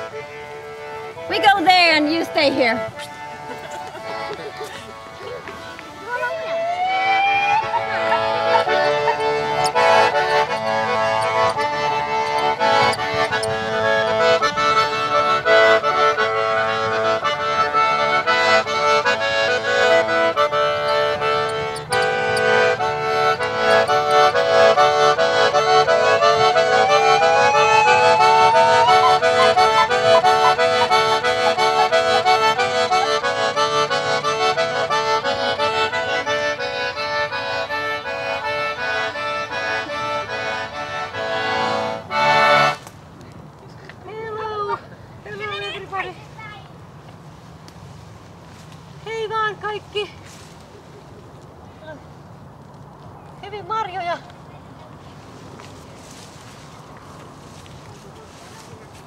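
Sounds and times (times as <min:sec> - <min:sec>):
accordion playing folk tune: 0:00.0 - 0:52.4.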